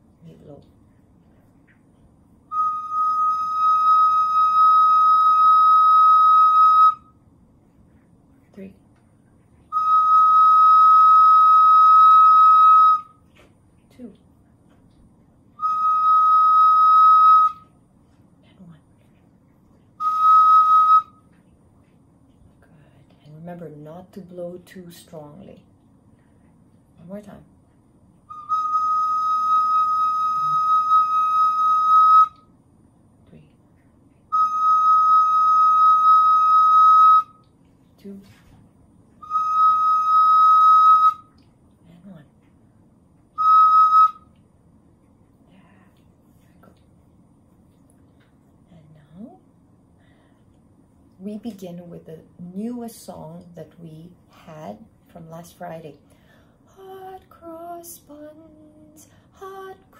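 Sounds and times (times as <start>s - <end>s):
recorder playing high notes: 2.5s - 7.0s.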